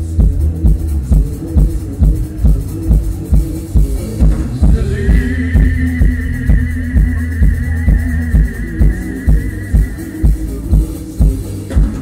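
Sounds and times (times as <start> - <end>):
drum beat: 0.0 - 12.0
sustained bass: 0.0 - 12.0.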